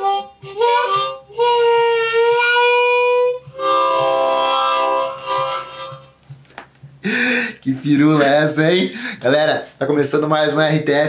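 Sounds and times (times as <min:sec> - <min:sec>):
harmonica playing: 0:00.0 - 0:06.3.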